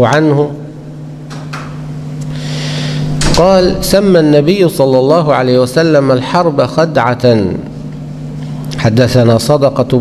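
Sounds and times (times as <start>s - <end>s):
low electrical hum: 0.0s - 10.0s
man breathing in: 2.3s - 3.1s.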